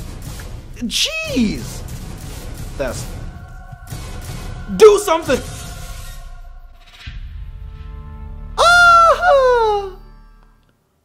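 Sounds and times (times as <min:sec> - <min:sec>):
faint background music: 0:00.0 - 0:06.8
man's falsetto wail: 0:08.6 - 0:10.0.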